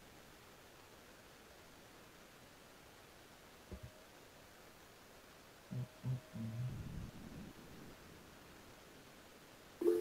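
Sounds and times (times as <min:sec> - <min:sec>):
faint steady line hiss: 0:00.0 - 0:10.0.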